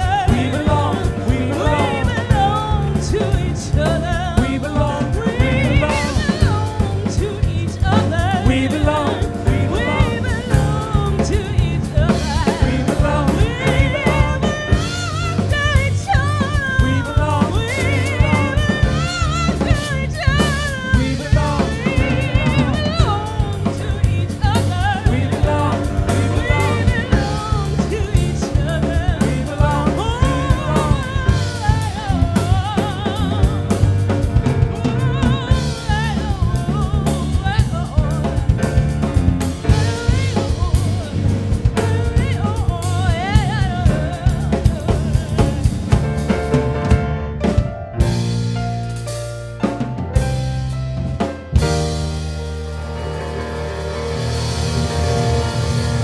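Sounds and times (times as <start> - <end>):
person singing with vibrato: 0.0 - 46.6
drum kit: 0.0 - 56.0
electric bass guitar: 0.0 - 56.0
grand piano: 0.0 - 56.0.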